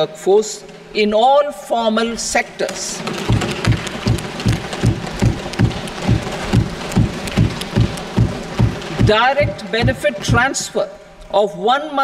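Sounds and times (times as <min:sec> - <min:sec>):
people thumping wooden desks: 0:03.0 - 0:10.8.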